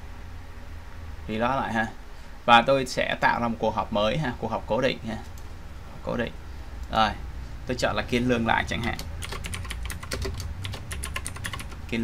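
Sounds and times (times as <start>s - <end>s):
computer keyboard typing: 8.8s - 11.9s.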